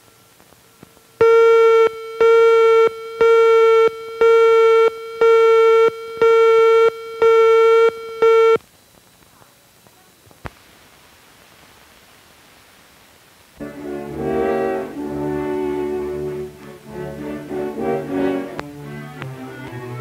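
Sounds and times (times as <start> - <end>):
buzzy countdown beeps: 1.2 - 8.6.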